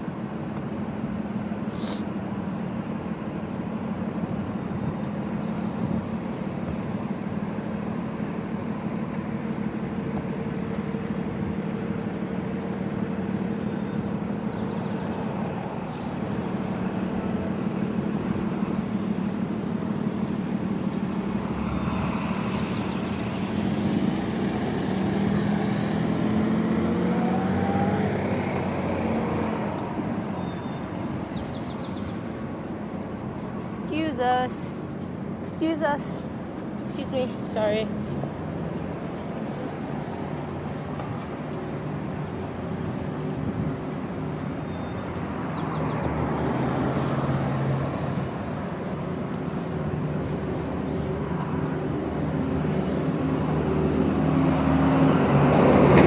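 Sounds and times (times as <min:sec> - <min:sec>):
road traffic hum: 0:00.0 - 0:56.0
vehicle passing: 0:21.0 - 0:30.5, 0:45.4 - 0:56.0.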